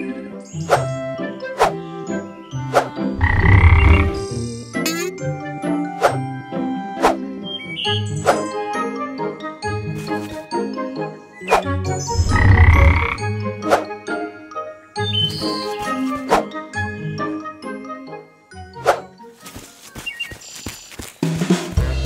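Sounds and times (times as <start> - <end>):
light cartoon music: 0.0 - 22.0
low cartoon sound effect: 4.8 - 5.1.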